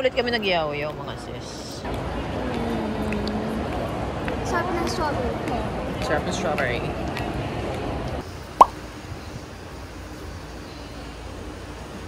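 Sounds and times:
mall background chatter: 0.0 - 8.2.

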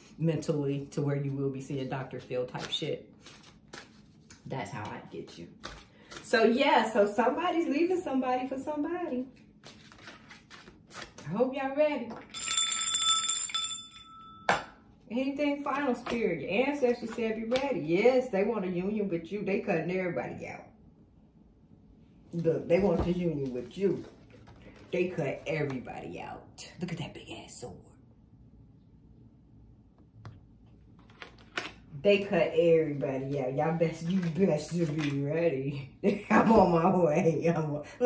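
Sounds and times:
small hand bell ringing: 12.3 - 14.7.

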